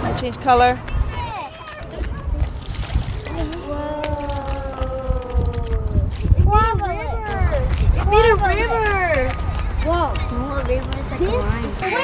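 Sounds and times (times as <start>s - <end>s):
child vocalizing ooh: 3.2s - 7.6s.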